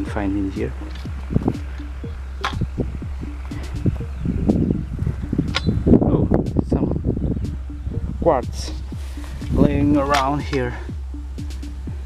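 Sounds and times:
footsteps crunching through dry grass: 0:00.0 - 0:05.2, 0:08.6 - 0:10.8
wind rumble on microphone: 0:00.0 - 0:12.0.

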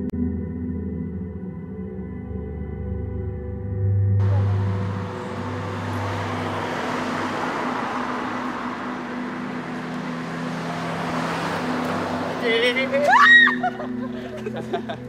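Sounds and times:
low ambient music drone: 0:00.0 - 0:12.5, 0:13.4 - 0:15.0
road traffic noise: 0:04.2 - 0:15.0.

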